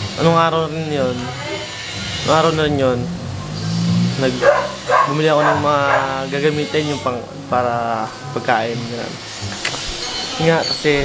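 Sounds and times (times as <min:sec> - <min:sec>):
drawn-out hesitation sound: 0:00.9 - 0:06.5
young man speaking: 0:02.1 - 0:03.5, 0:04.1 - 0:09.2.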